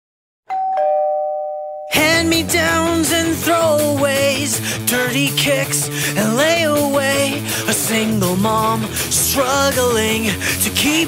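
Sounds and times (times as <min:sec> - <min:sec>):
two-tone chime: 0:00.5 - 0:02.1
loud rock music: 0:02.0 - 0:11.0.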